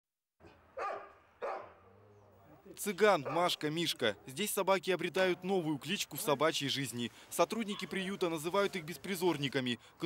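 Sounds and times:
dog barking: 0:00.4 - 0:01.8, 0:03.2 - 0:03.5.

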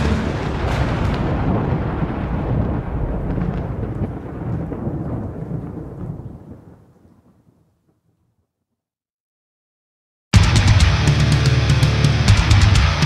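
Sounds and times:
rain: 0:00.0 - 0:07.5
rumbling thunder: 0:00.0 - 0:07.6.

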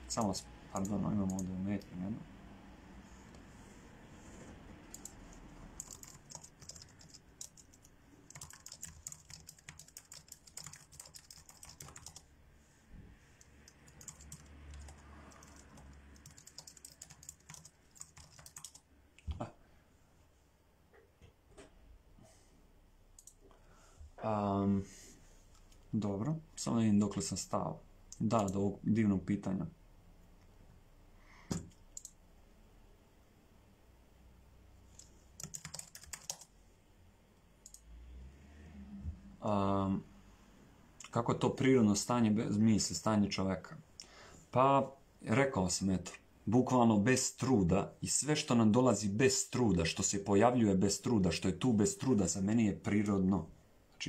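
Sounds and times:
computer keyboard typing: 0:00.1 - 0:01.9, 0:04.8 - 0:12.2, 0:13.4 - 0:18.8, 0:31.5 - 0:32.2, 0:34.9 - 0:36.5, 0:37.6 - 0:37.8.

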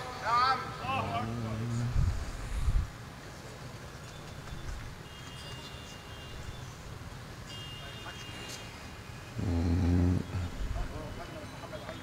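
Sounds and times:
recitation voice: 0:00.5 - 0:02.2.

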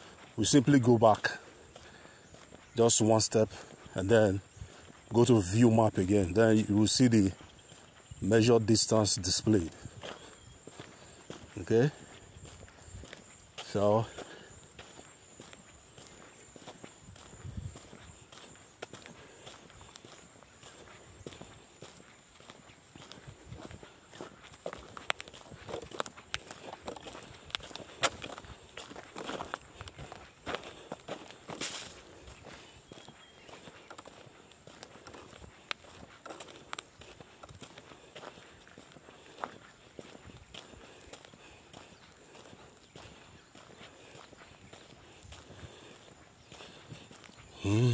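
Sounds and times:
footsteps on dirt road: 0:00.0 - 0:47.9.

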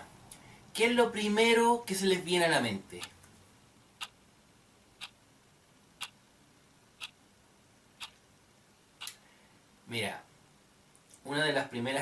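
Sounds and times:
clock ticking: 0:04.0 - 0:04.2, 0:07.0 - 0:07.2, 0:08.0 - 0:08.2.

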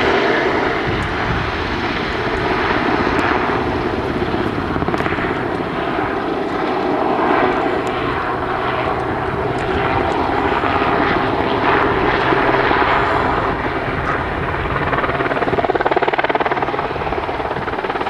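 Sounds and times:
helicopter rotor and engine: 0:00.0 - 0:18.0.

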